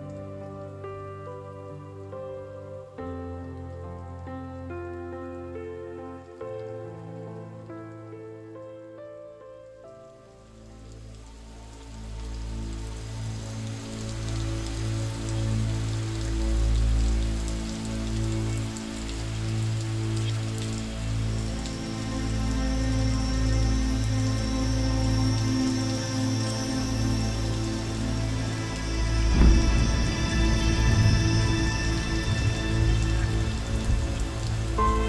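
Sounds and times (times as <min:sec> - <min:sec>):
slow ambient music: 0:00.0 - 0:35.0
steady rain: 0:00.0 - 0:35.0.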